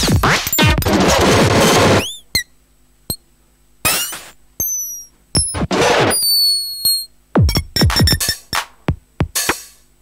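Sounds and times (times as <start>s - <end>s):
high electronic pings: 4.6s - 5.6s
short falling electronic chirp: 4.6s - 7.1s.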